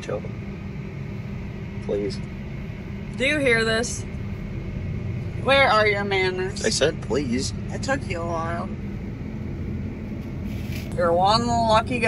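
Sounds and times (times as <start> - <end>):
low engine drone: 0.0 - 12.0.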